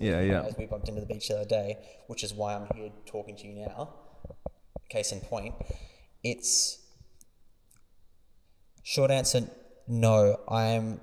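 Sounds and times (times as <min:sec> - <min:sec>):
man speaking: 0:00.0 - 0:04.1, 0:04.8 - 0:07.0, 0:08.8 - 0:11.0.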